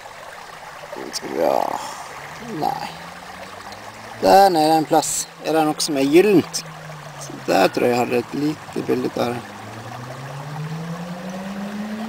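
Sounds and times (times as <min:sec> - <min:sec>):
water washing in a pan: 0:00.0 - 0:12.0.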